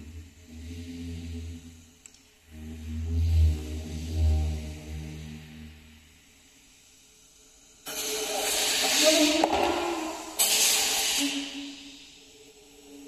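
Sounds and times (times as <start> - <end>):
low droning tone: 0.0 - 6.3
loud hissing air-like noise: 0.0 - 13.0.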